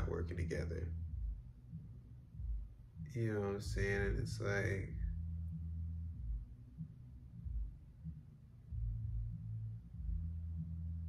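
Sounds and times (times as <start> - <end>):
low rumble and hum: 0.0 - 11.0
soft low thumps: 0.0 - 11.0.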